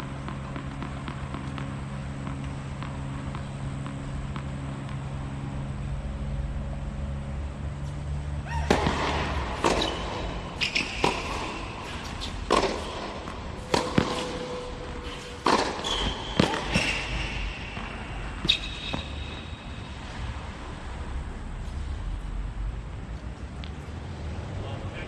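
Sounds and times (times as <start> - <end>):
tennis ball bouncing: 0.0 - 6.2, 7.8 - 20.2
sneaker squeaks: 7.8 - 19.9
tennis racquet hitting ball: 8.4 - 20.2.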